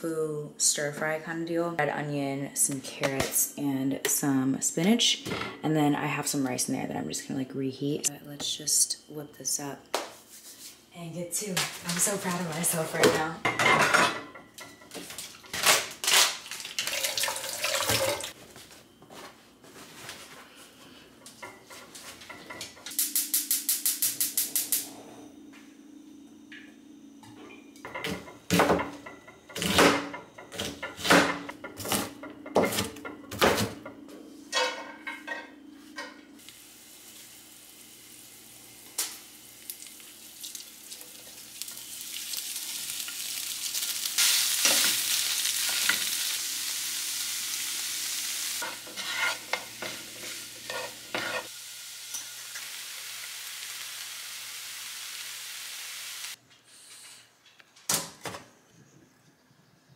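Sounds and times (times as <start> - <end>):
utensils clattering on frying pan: 12.0 - 15.6, 21.2 - 23.0, 27.8 - 36.2, 48.6 - 51.5
food sizzling in hot oil: 16.3 - 18.4, 22.9 - 24.8, 36.4 - 56.4.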